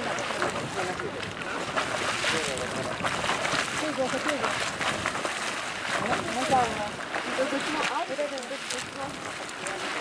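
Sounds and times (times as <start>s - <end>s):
geyser water splashing: 0.0s - 10.0s.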